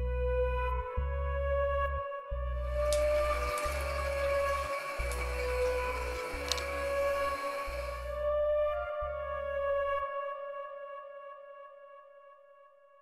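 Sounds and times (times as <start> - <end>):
ambient electronic music: 0.0 - 12.2.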